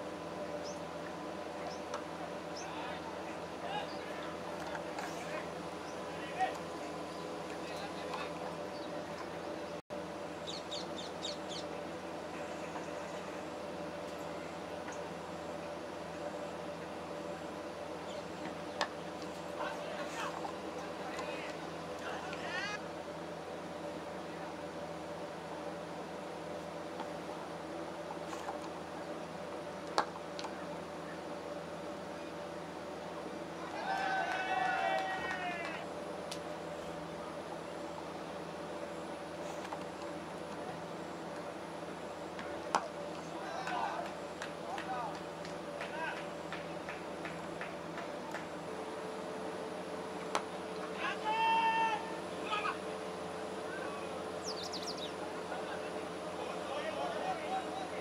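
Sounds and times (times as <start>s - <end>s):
faint hum: 0.0s - 58.0s
bird chirping: 10.4s - 11.7s, 54.4s - 55.2s
person shouting: 33.8s - 35.8s, 51.0s - 52.8s.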